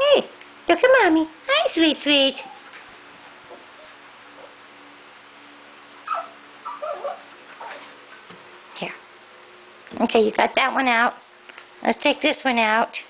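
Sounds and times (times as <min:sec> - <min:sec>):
puppy whimpering: 0:06.0 - 0:07.9.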